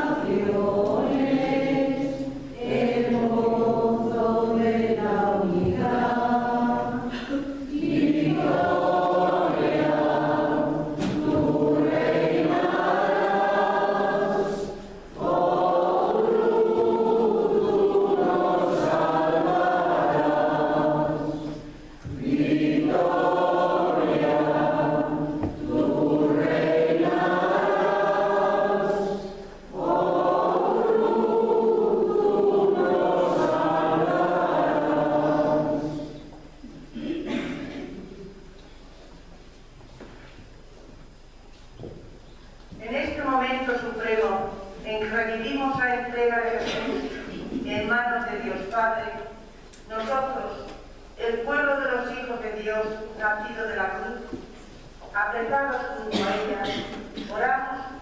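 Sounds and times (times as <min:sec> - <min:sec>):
choir singing sacred music: 0:00.0 - 0:38.4.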